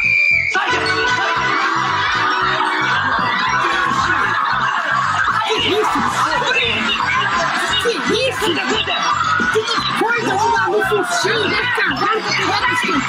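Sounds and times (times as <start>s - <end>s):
shrill whistle blast: 0.0s - 2.9s
background music with beat: 0.0s - 13.0s
audience laughter: 0.6s - 13.0s.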